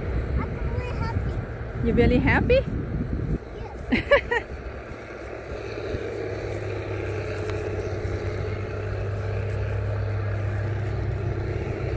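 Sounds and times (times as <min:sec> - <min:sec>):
vehicle engine hum: 0:00.0 - 0:11.9.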